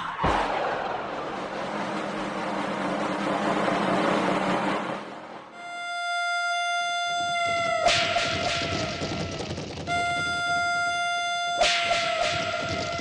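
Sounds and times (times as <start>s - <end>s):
dense rushing score swell: 0.0s - 5.6s.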